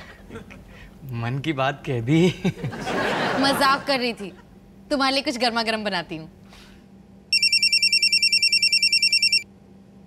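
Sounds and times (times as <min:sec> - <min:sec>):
telephone ringing with electronic trill: 0:07.3 - 0:09.5.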